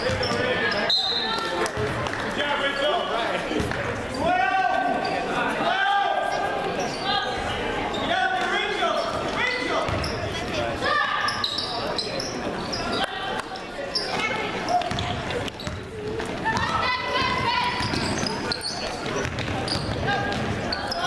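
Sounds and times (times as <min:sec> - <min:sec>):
sneaker squeaks: 0:00.0 - 0:02.0, 0:06.3 - 0:21.0
echoing shouting voices: 0:16.4 - 0:18.4.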